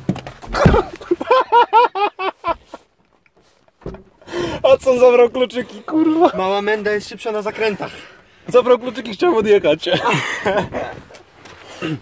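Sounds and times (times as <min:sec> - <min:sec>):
thump: 0:00.1 - 0:01.1, 0:03.8 - 0:04.1
man laughing high-pitched: 0:00.6 - 0:02.8.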